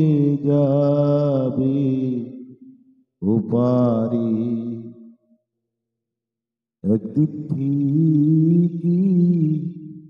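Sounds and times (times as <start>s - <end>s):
man singing unaccompanied: 0.0s - 2.4s, 6.8s - 10.0s.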